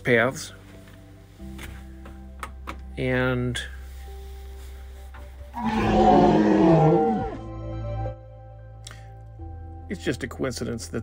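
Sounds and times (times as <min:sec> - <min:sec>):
soft background music: 0:00.0 - 0:11.0
dramatic animal roar: 0:05.6 - 0:07.5.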